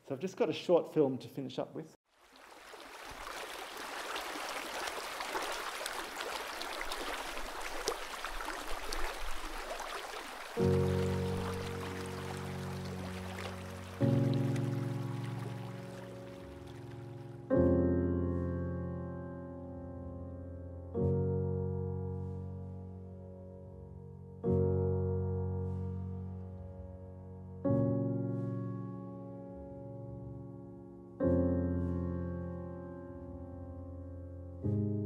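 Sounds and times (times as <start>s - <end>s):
creek water running: 2.1s - 17.4s
slow piano chords: 7.0s - 35.0s.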